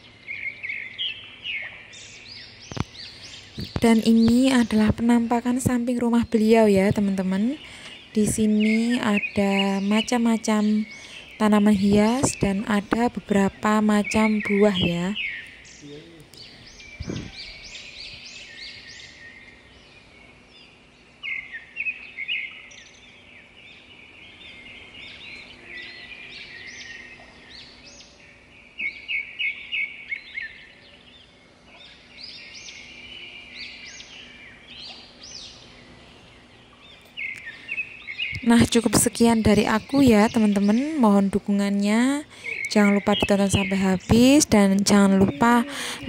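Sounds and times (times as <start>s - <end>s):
faint steady hum: 0.0s - 46.0s
songbirds chirping: 0.0s - 46.0s.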